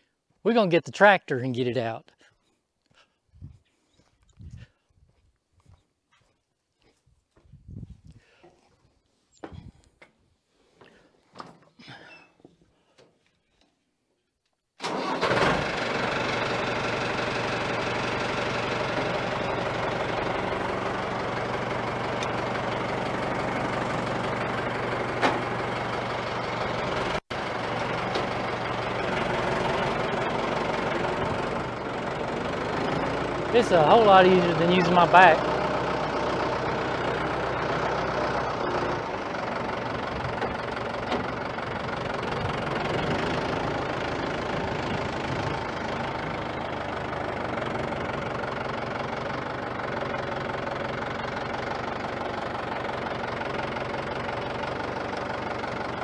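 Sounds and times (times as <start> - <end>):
tractor diesel engine running: 14.8 - 56.0.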